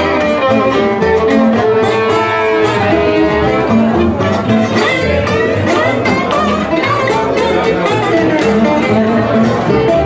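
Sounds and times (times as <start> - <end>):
strummed rhythm guitar: 0.0 - 10.0
violin melody: 0.0 - 10.0.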